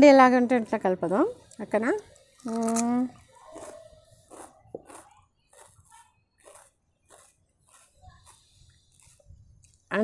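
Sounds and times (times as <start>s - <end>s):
crunchy chewing: 2.2s - 9.9s.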